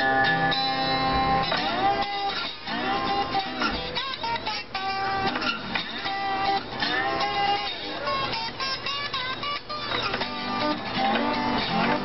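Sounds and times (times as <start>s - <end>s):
acoustic guitar strummed and picked: 0.0s - 12.0s.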